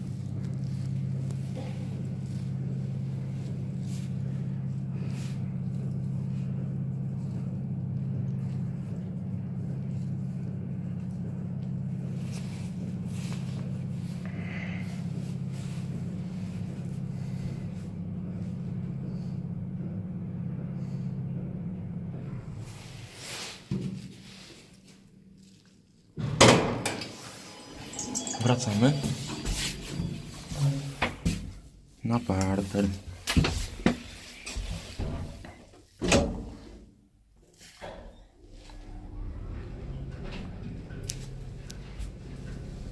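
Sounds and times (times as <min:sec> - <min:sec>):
lift car humming: 0:00.2 - 0:23.4, 0:26.7 - 0:32.7, 0:37.9 - 0:42.9.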